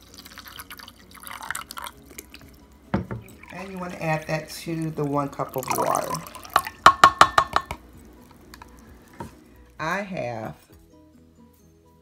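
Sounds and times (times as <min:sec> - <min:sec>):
plastic cup clinking against glass: 0:05.9 - 0:07.8.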